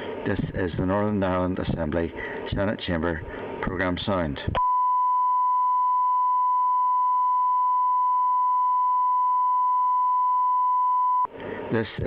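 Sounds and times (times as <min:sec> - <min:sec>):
steady pure beep tone: 0:04.6 - 0:11.3.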